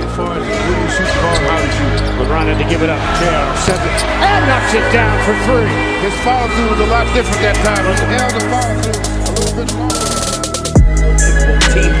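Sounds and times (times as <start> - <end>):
background music with bass line: 2.9 - 12.0.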